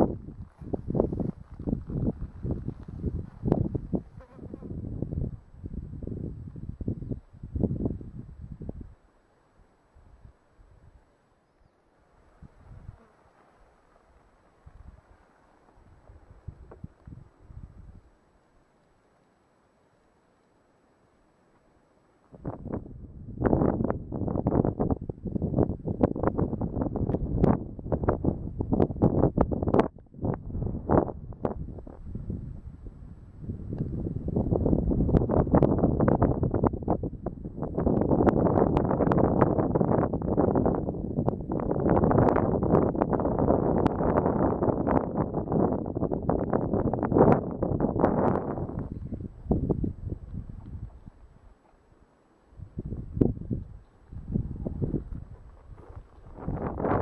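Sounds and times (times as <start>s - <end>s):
wind blowing on microphone: 0.0s - 9.0s, 12.3s - 13.1s, 14.6s - 15.2s, 15.8s - 18.1s, 22.3s - 51.6s, 52.6s - 57.0s.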